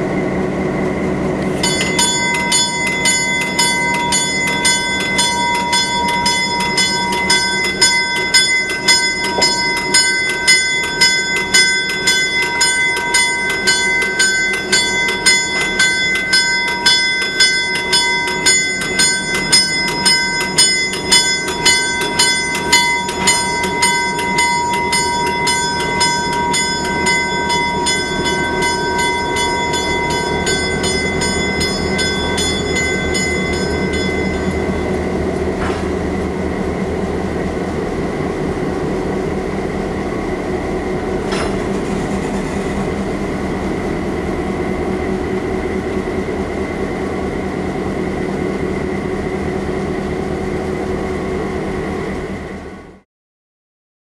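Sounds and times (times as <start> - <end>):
diesel locomotive running: 0.0 - 53.0
locomotive bell ringing: 1.5 - 37.4.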